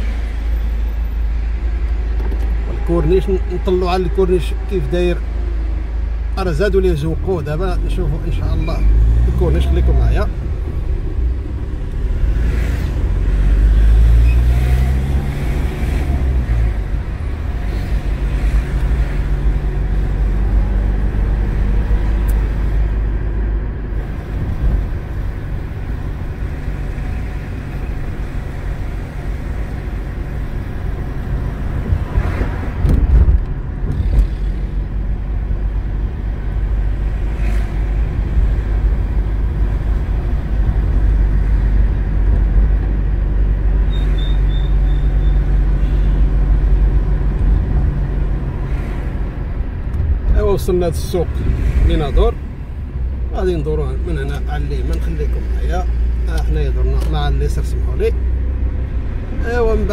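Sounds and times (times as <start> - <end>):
car engine and road noise: 0.0 - 59.9.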